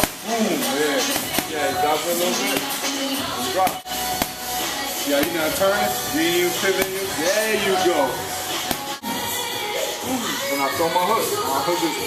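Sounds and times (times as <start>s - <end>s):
gloves punching heavy bag: 0.0s - 0.6s, 3.6s - 4.4s
background music: 0.0s - 12.0s.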